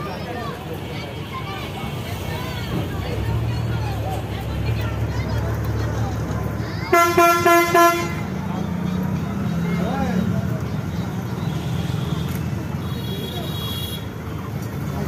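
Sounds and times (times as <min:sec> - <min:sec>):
bus engine droning: 0:00.0 - 0:15.0
passengers chatting: 0:00.0 - 0:15.0
vehicle horn toots: 0:06.9 - 0:08.3.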